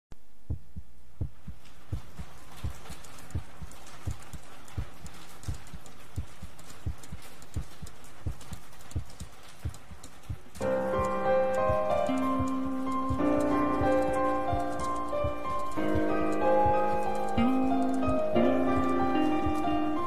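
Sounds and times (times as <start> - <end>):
steady hiss: 0.2 - 20.0
heartbeat thumps: 0.3 - 11.0, 11.6 - 19.7.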